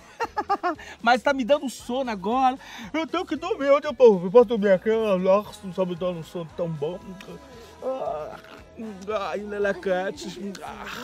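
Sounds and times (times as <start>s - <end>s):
background music: 0.0s - 11.0s
man groaning: 7.8s - 9.0s.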